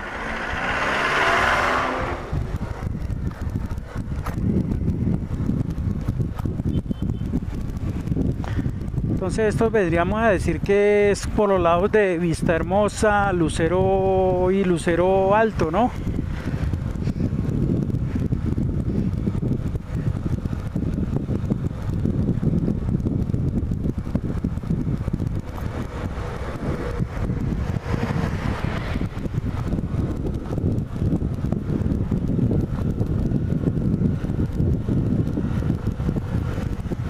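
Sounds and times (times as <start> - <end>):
bus passing: 0.0 - 4.0, 25.2 - 37.0
motorcycle engine running: 0.0 - 12.2, 12.8 - 37.0
wind buffeting microphone: 0.0 - 37.0.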